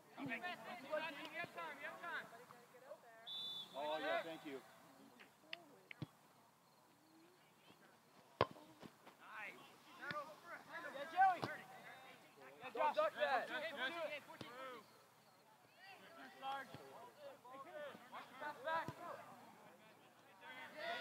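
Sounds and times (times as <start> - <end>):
high whistle-like tone: 3.3 - 3.9
ball being kicked: 8.4 - 8.9
distant shouting of people: 20.6 - 21.0.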